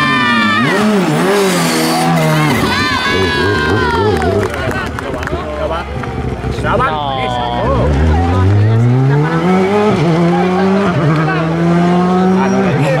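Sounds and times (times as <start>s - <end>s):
rally car engine accelerating: 0.0s - 13.0s.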